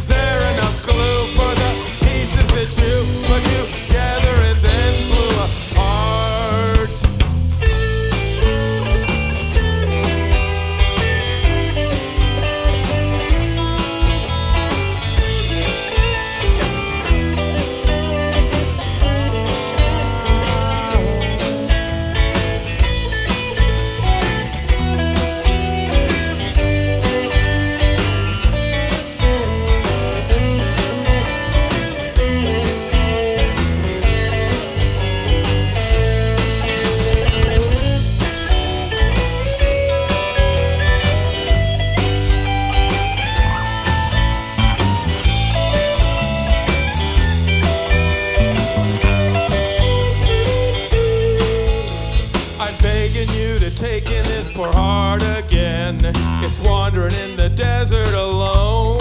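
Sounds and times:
lead guitar melody bending: 0.0 - 57.4
bass guitar: 0.0 - 59.0
drum kit beat: 0.0 - 59.0
electric guitars: 0.0 - 59.0.

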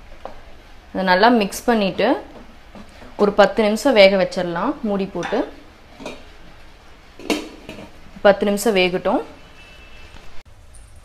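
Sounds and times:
metal lid clanking on pot: 5.2 - 6.3, 7.2 - 8.0.

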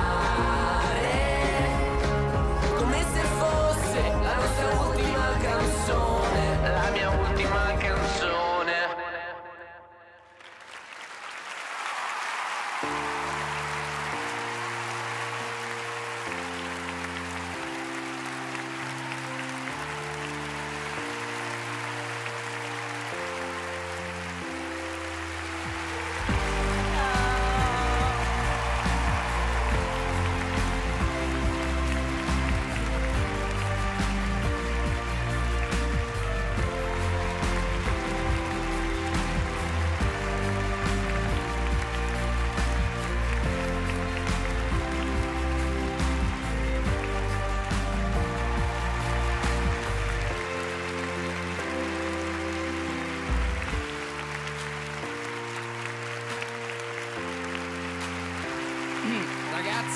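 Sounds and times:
background music with heavy bass: 0.0 - 8.6, 24.4 - 54.4
applause: 10.2 - 59.9.

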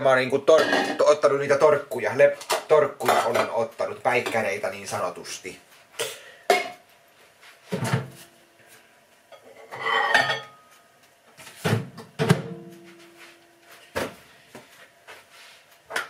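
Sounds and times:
dishes and cutlery clinking: 2.4 - 3.6, 9.3 - 10.7.

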